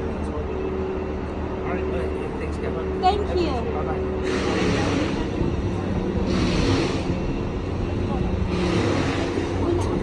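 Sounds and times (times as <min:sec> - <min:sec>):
rushing noise: 0:04.0 - 0:10.0.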